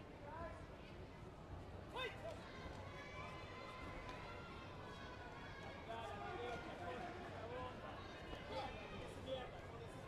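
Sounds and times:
murmur of sports hall: 0.0 - 10.0.

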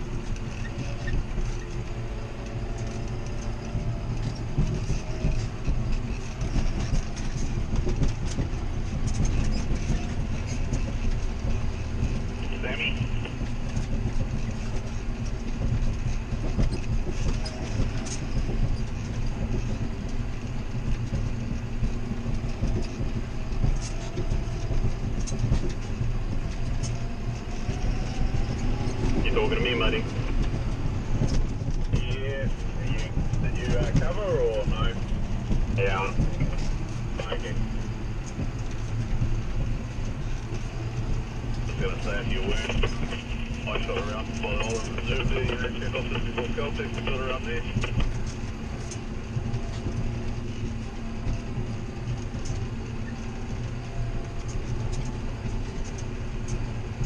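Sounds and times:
knocks and rattles of bouncing: 0.0 - 57.0
tractor diesel engine running: 0.0 - 57.0.

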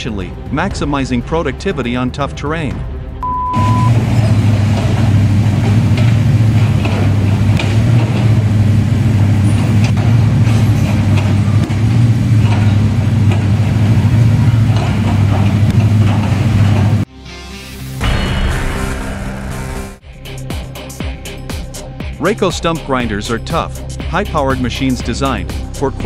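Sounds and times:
excavator engine droning: 3.0 - 22.2.

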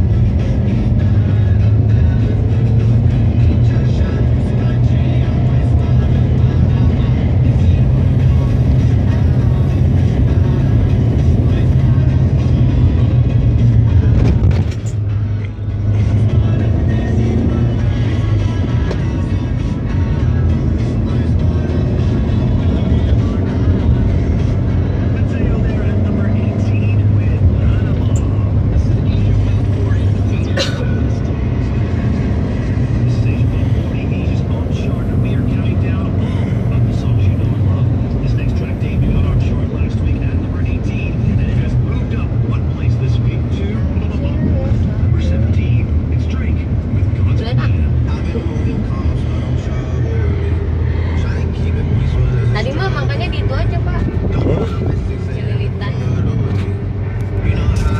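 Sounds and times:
car engine and road noise: 0.0 - 57.9
music playing: 0.0 - 57.9.

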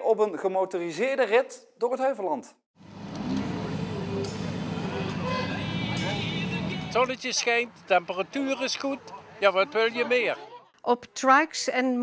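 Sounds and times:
motorcycle engines idling: 2.8 - 9.8.

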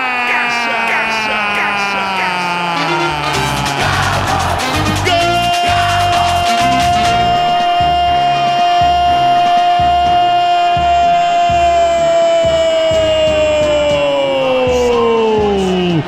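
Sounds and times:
commentator's drawn-out goal cry: 0.0 - 16.0
music with steady beat: 2.8 - 16.0.

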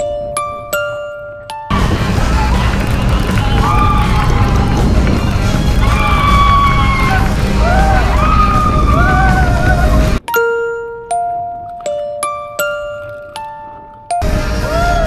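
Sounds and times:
wind rushing over microphone: 1.7 - 10.2
riders yelling: 1.9 - 10.2, 14.6 - 15.0
chiming music jingle: 10.2 - 14.2.

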